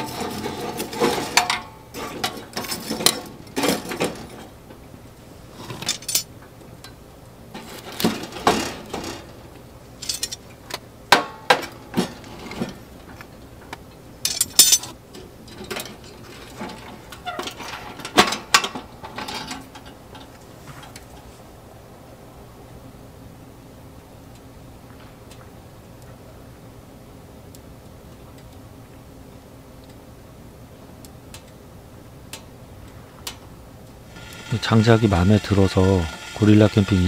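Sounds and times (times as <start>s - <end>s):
metallic clanks on wood stove: 0.0s - 4.6s, 14.2s - 21.2s.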